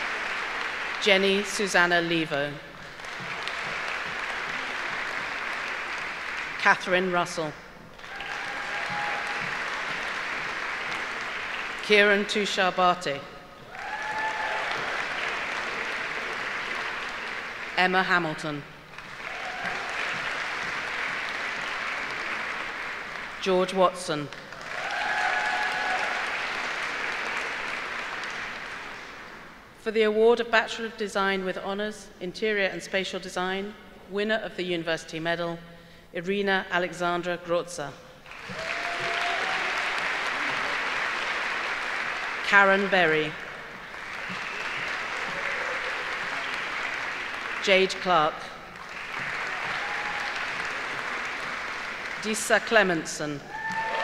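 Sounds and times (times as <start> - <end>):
audience applauding: 0.0 - 1.7, 2.7 - 7.0, 7.8 - 12.4, 13.6 - 17.9, 18.8 - 23.5, 24.3 - 29.7, 38.2 - 54.0.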